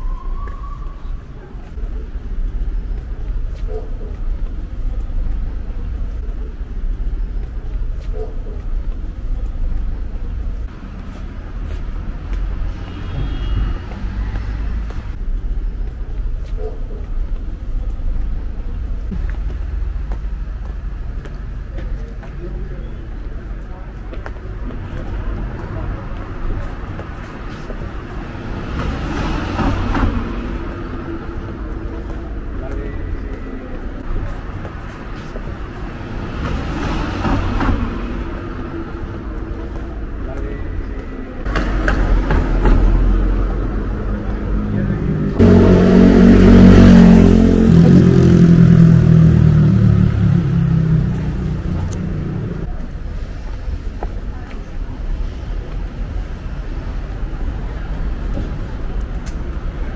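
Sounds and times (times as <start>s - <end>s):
passers-by talking: 0.0s - 45.4s, 46.8s - 59.9s.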